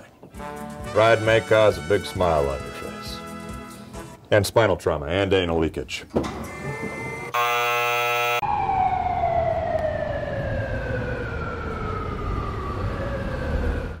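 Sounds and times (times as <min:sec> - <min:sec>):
flat buzzy tone: 0:06.5 - 0:08.4
siren tone falling in pitch: 0:06.6 - 0:14.0.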